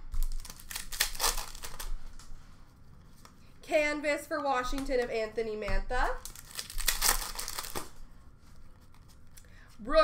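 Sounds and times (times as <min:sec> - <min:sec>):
foil wrapper crinkling: 0:00.1 - 0:02.0, 0:06.2 - 0:07.9.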